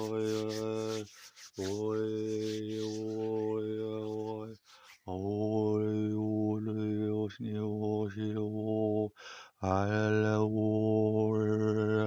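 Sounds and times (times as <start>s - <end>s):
man overtone singing: 0.0s - 9.0s
breath: 4.6s - 5.0s, 9.2s - 9.6s.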